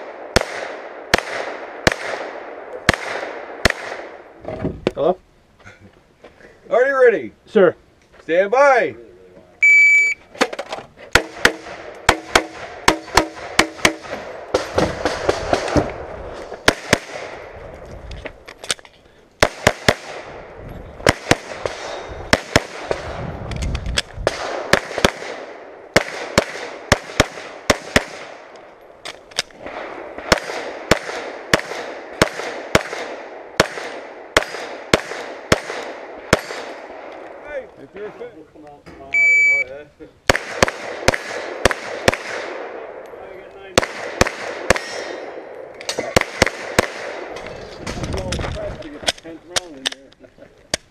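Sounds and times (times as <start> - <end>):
pistol shots: 0.0 - 4.2, 11.1 - 17.6, 19.4 - 20.4, 21.0 - 23.2, 24.2 - 28.6, 29.4 - 37.2, 40.3 - 43.0, 43.8 - 47.5.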